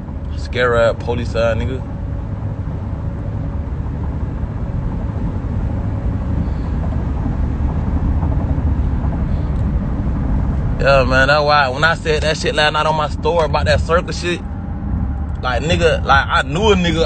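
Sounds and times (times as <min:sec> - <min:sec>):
car engine and road noise: 0:00.0 - 0:17.0.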